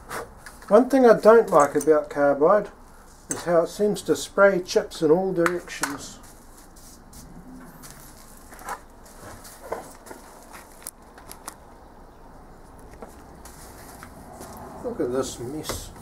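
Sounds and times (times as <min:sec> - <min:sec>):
steady low hum: 0:02.4 - 0:16.0.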